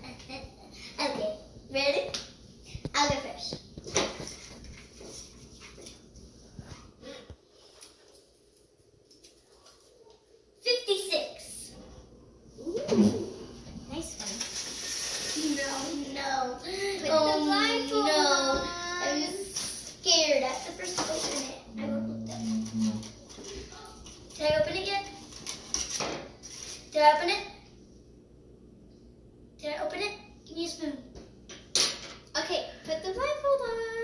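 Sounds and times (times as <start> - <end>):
children talking and calling out: 15.4 - 23.1.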